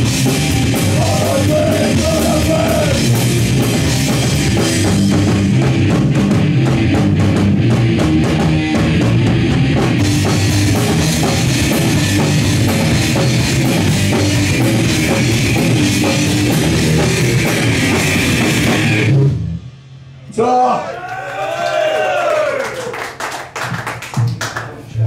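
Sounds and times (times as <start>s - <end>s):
fast drum beat: 0.0s - 19.2s
distorted electric guitars: 0.0s - 20.3s.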